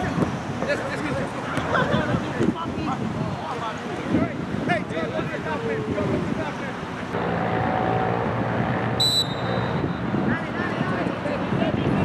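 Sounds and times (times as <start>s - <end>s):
low engine-like drone: 7.1s - 10.0s.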